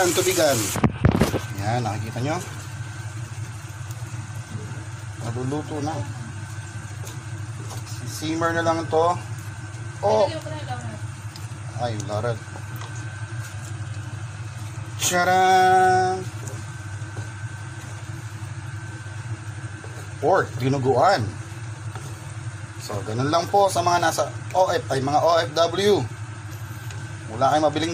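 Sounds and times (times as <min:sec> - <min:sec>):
low motor hum: 0:00.0 - 0:27.9.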